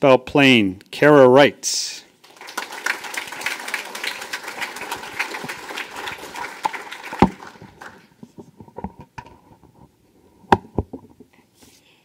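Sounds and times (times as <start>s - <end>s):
audience clapping: 2.2s - 8.2s.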